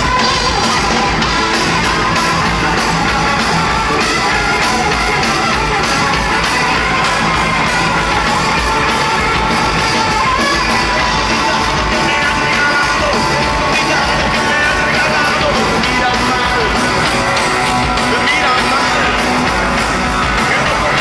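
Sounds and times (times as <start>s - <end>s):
bass guitar: 0.0s - 21.0s
drum kit: 0.0s - 21.0s
electric guitar: 0.0s - 21.0s.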